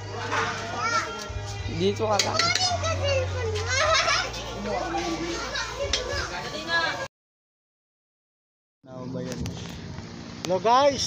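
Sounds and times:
children talking and calling out: 0:00.2 - 0:07.1.

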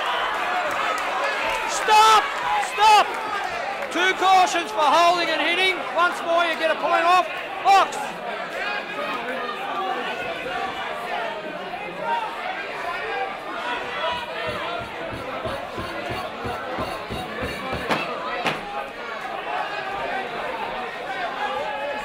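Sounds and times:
crowd talking and shouting: 0:00.0 - 0:22.0.

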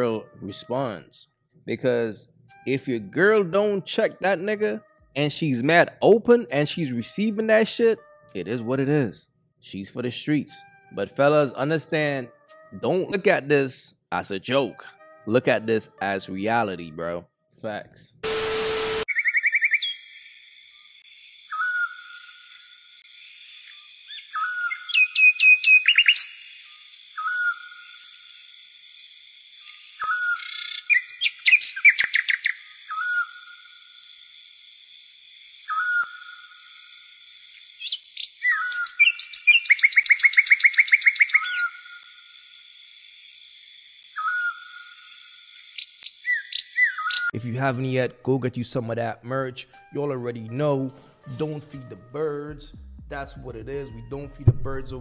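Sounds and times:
birds chirping and trilling: 0:19.1 - 0:47.4.

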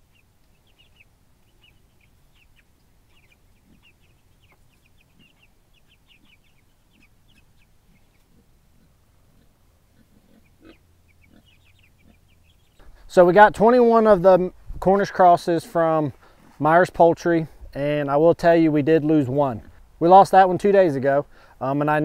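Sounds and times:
chicks peeping: 0:00.0 - 0:21.8.

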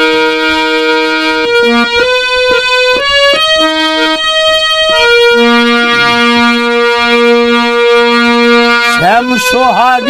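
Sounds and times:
harmonium chord: 0:00.0 - 0:10.0.

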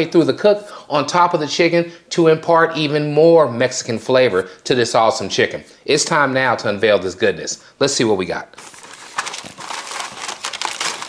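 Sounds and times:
aluminium foil crinkling: 0:08.6 - 0:11.0.

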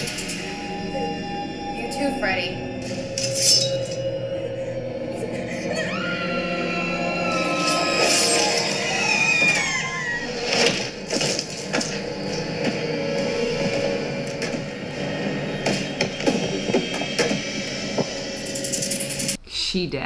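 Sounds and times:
tense music with low tones: 0:00.0 - 0:19.4
sharp cracks and knocks: 0:10.5 - 0:12.0.

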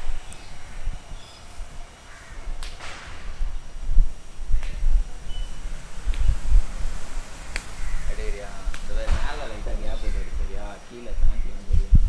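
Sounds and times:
low uneven rumble: 0:00.0 - 0:12.0
sharp crack: 0:02.6 - 0:03.4, 0:07.5 - 0:09.8.

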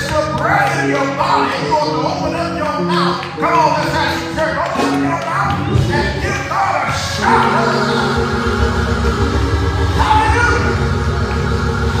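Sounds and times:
keyboard playing held chords: 0:00.0 - 0:12.0
rhythmic low bass line: 0:00.0 - 0:12.0
congregation shouting: 0:03.7 - 0:08.9, 0:09.8 - 0:11.2.

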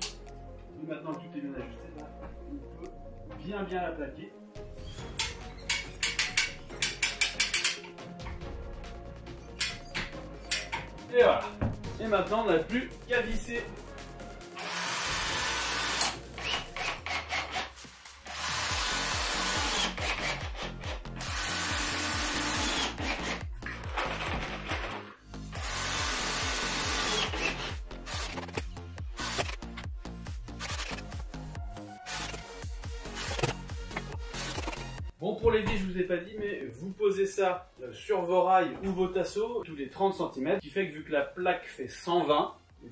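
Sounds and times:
background music: 0:00.0 - 0:42.9
drill driving screws: 0:14.6 - 0:23.5, 0:25.5 - 0:29.8, 0:30.5 - 0:31.1, 0:32.1 - 0:34.9.

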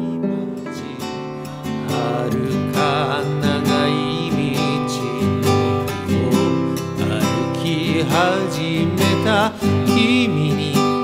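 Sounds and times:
classical guitar fingerstyle: 0:00.0 - 0:11.0.

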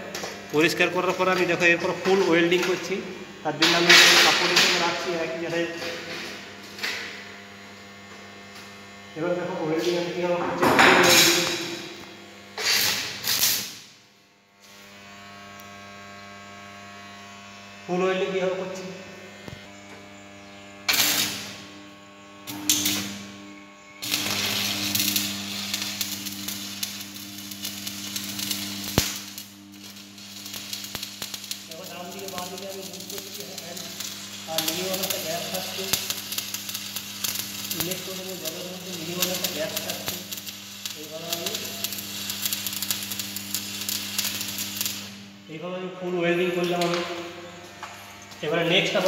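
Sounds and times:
arc welding crackle: 0:00.0 - 0:49.0
welder transformer humming: 0:00.0 - 0:49.0.

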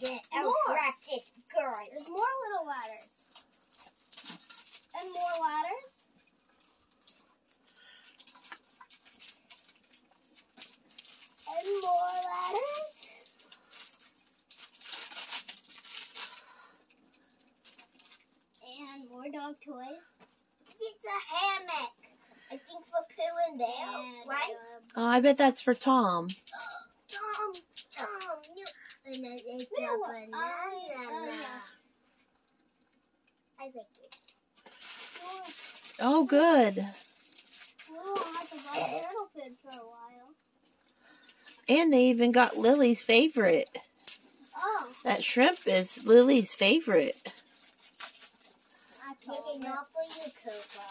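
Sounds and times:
packaging rustling and crinkling: 0:00.0 - 0:18.6, 0:34.0 - 0:40.0, 0:42.3 - 0:50.9
small items clicking: 0:01.0 - 0:18.3, 0:34.0 - 0:39.1, 0:47.0 - 0:50.9.

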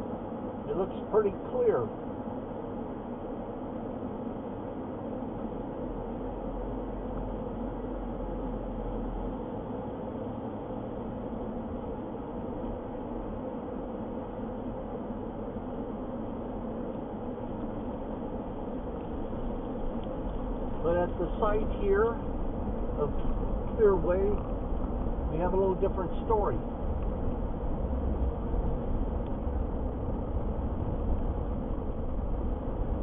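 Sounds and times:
car engine and tyre hum: 0:00.0 - 0:33.0.

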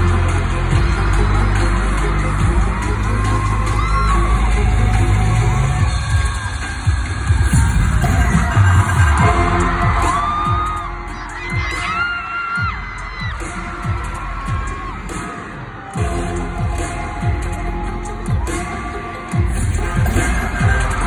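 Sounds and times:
fans screaming: 0:00.0 - 0:21.0
loud concert music: 0:00.0 - 0:21.0.

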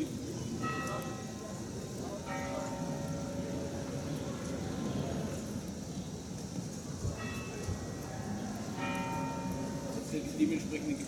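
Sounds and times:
low rumble of street noise: 0:00.0 - 0:11.0.

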